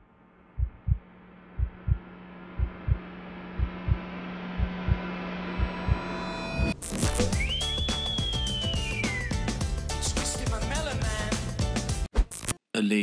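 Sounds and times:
sustained drone: 0.0 - 7.2
heartbeat thumps: 0.5 - 6.1.

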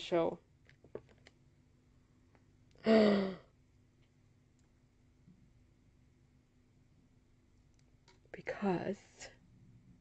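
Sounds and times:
woman's breathy sigh: 2.8 - 3.4.

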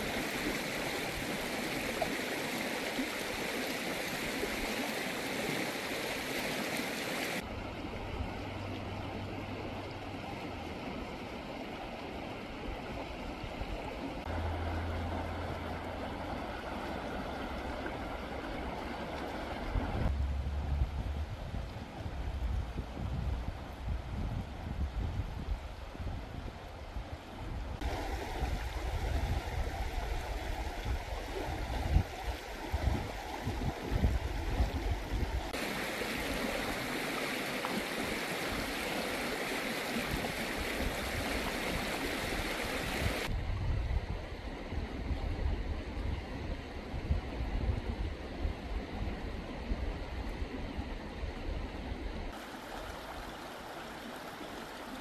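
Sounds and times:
river water rushing: 0.0 - 22.8, 26.8 - 43.5, 48.4 - 55.0
wind gusting on microphone: 19.6 - 36.5, 40.0 - 52.4.

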